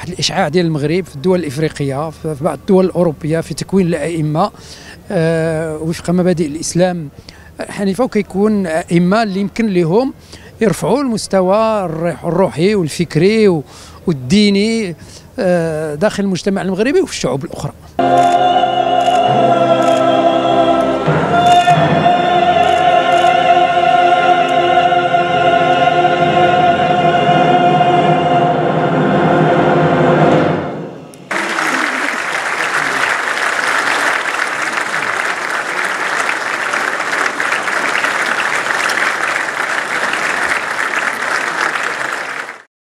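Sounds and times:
audience applauding: 0:18.0 - 0:20.9, 0:31.3 - 0:42.7
singers with orchestra: 0:18.0 - 0:32.2.

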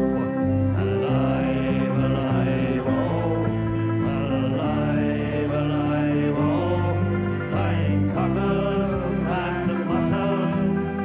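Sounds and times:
banjo playing slow tune: 0:00.0 - 0:11.0.

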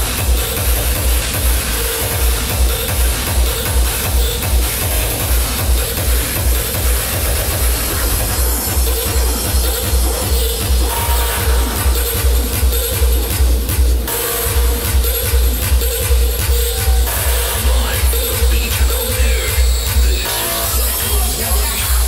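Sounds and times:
hardstyle dance music: 0:00.0 - 0:22.0
heavy kick drum: 0:00.0 - 0:22.0.

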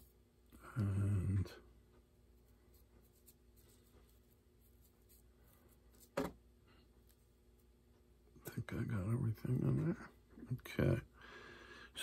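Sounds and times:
soft paintbrush strokes: 0:00.0 - 0:08.0.

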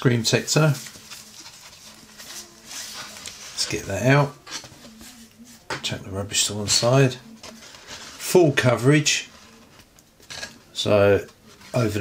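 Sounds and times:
paper sleeve rustling: 0:00.4 - 0:05.6, 0:11.2 - 0:12.0.

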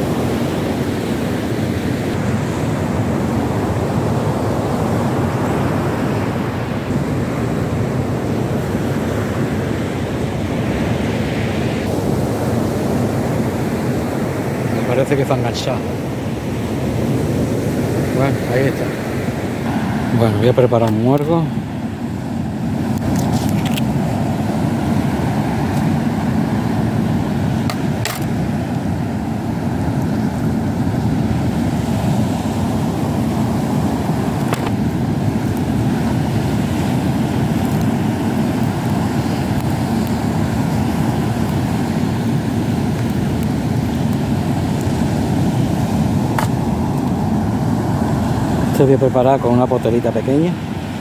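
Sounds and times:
rough surf: 0:00.0 - 0:51.0
strong wind: 0:00.0 - 0:51.0.

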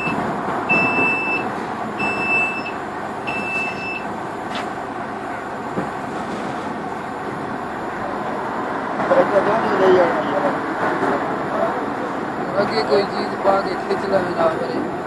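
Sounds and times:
electronic warning beeps: 0:00.0 - 0:04.1
diesel engine running under load: 0:00.0 - 0:15.0.

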